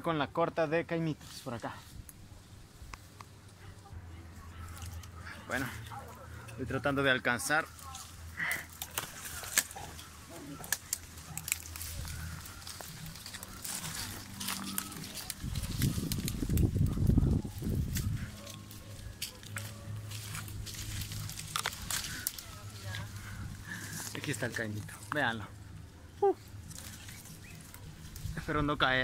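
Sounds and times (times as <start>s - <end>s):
leaves and twigs rustling and snapping: 0.9s - 29.0s
leaves rubbing over microphone: 1.0s - 29.0s.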